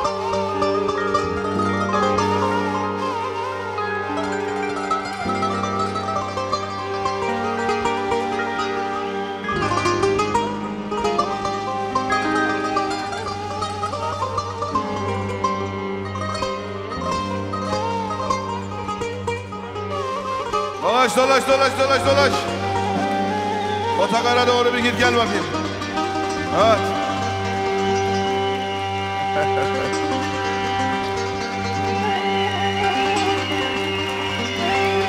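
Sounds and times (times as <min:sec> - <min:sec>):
low bass: 0:00.0 - 0:20.6
plucked zither melody: 0:00.0 - 0:35.0
violin and cello lines: 0:00.0 - 0:35.0.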